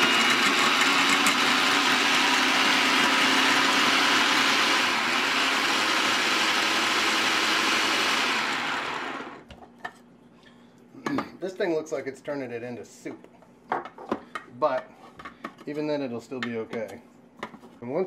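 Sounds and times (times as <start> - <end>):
food processor grinding: 0.0 - 9.5.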